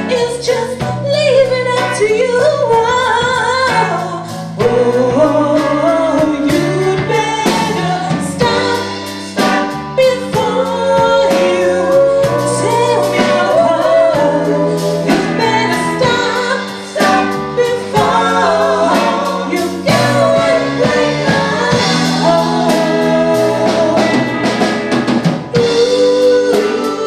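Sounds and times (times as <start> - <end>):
woman singing: 0.0 - 24.7, 25.5 - 27.0
live band playing: 0.0 - 27.0
backing singers: 4.5 - 27.0.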